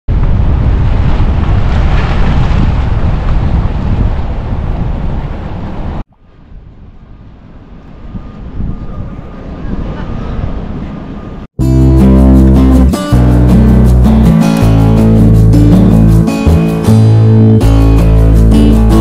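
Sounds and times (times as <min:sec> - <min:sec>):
wind buffeting microphone: 0:00.1 - 0:11.5
soft wind: 0:00.1 - 0:11.6
distant surf: 0:00.1 - 0:19.0.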